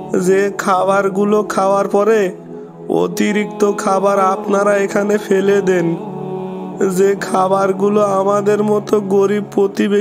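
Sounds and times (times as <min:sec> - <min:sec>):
low droning background music: 0:00.0 - 0:10.0.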